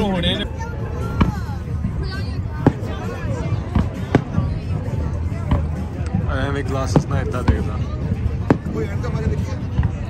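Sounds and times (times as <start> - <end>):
fireworks exploding: 1.0 - 6.2, 6.8 - 10.0.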